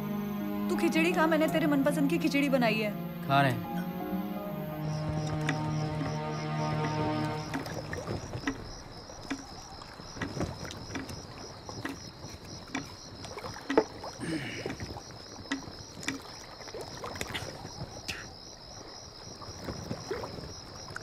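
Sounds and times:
insects chirping: 0.0 - 21.0
water lapping against boats: 4.7 - 21.0
small knocks and clicks: 8.4 - 13.0, 15.5 - 16.3.

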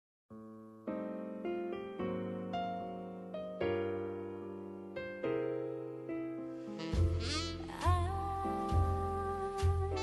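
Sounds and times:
heavy bass beat: 7.0 - 8.1.

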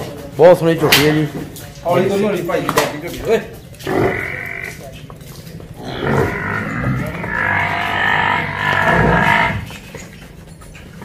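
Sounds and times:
water buffalo bellowing: 3.8 - 4.8, 5.8 - 9.8.

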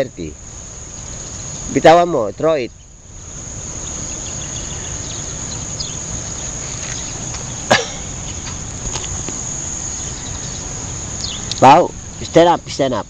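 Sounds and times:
crickets trilling: 0.0 - 13.0
faint chirps: 0.0 - 13.0.

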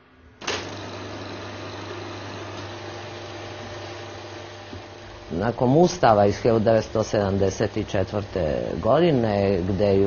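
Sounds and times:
film projector whirring: 0.4 - 10.0.

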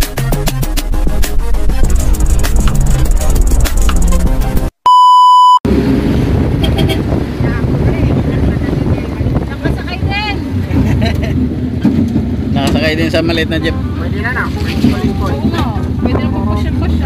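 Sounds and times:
road noise: 0.0 - 4.8, 5.7 - 17.0
vehicle engine rumble: 0.0 - 4.8, 5.7 - 17.0
electronic test-tone beep: 4.9 - 5.6
people talking and laughing: 7.5 - 12.0.

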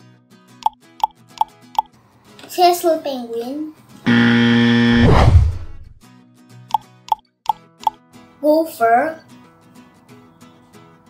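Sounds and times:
harsh wrong-answer buzzer: 4.1 - 5.9.

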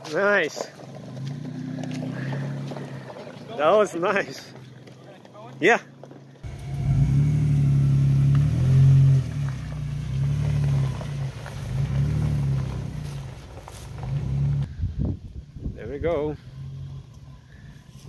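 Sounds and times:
car engine revving: 0.8 - 3.7, 6.4 - 14.7.

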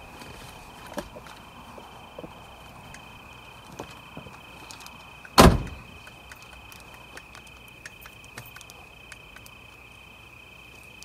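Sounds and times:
door slam with ringing tail: 5.4 - 5.8.

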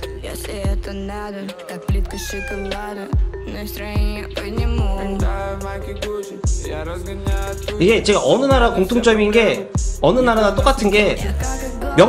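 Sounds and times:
hip-hop song with heavy bass: 0.0 - 12.0
cat meowing: 2.0 - 3.1.

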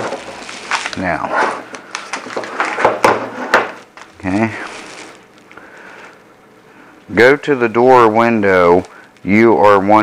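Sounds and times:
paper leaflet rustling: 0.0 - 3.0, 3.8 - 6.2
plastic knocking on wooden table: 2.4 - 3.8.

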